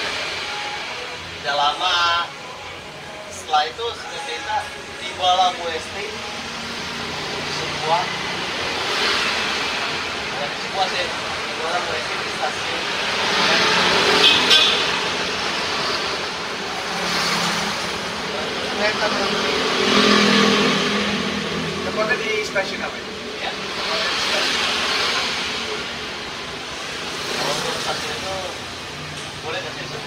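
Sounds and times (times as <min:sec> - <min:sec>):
vehicles passing by: 0:00.0 - 0:30.0.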